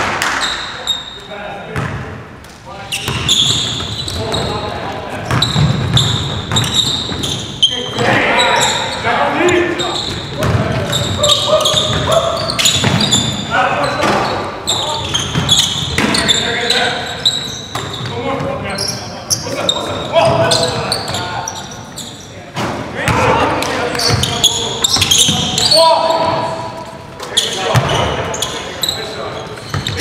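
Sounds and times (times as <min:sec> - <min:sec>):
players shouting: 0:06.7 - 0:16.9
basketball bouncing on hardwood: 0:10.4 - 0:11.0.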